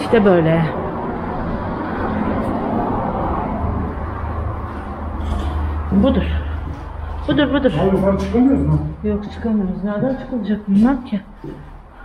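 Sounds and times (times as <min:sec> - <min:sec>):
low rumble: 0:00.0 - 0:09.8.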